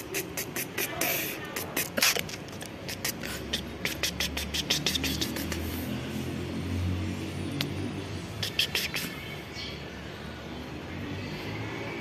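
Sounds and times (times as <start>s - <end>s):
hand scratching cat fur: 0.1s - 6.0s.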